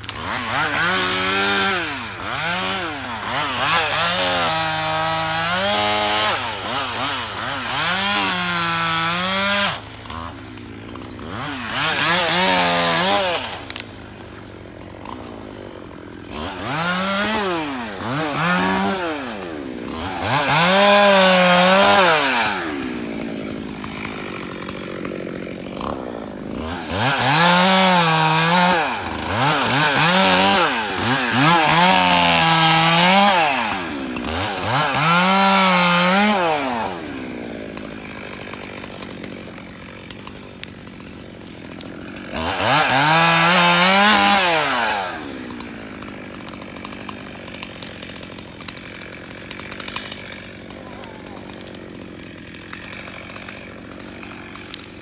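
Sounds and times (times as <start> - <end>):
chainsaw cutting wood: 0.0 - 55.0.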